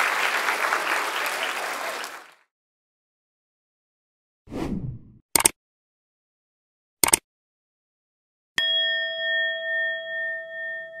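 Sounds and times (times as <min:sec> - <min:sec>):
bell chime ringing: 0:08.6 - 0:11.0.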